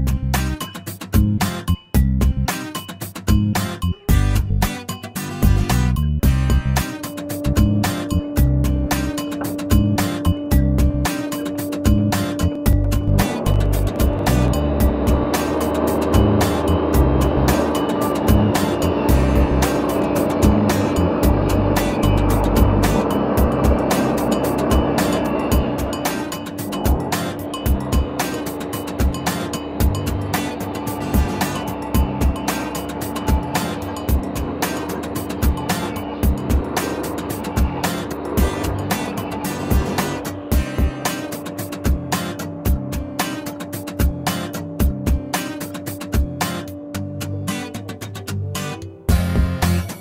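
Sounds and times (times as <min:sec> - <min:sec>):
background music with a beat: 0:00.0 - 0:50.0
table saw motor hum: 0:12.8 - 0:40.5.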